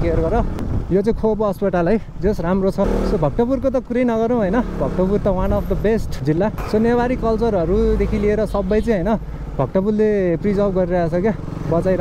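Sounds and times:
man talking: 0.0 - 12.0
motorcycle riding: 0.0 - 12.0.

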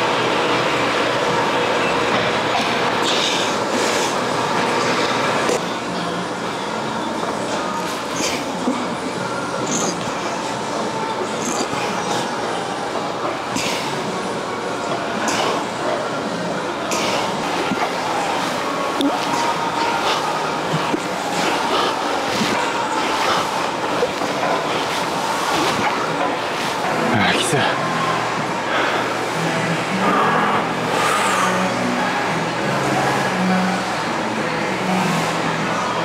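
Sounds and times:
gym room noise: 0.0 - 36.0.

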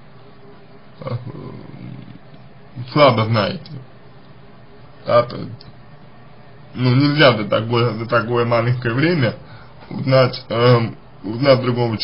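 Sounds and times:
faint steady hiss: 0.0 - 12.0
man saying uh: 1.0 - 2.2.

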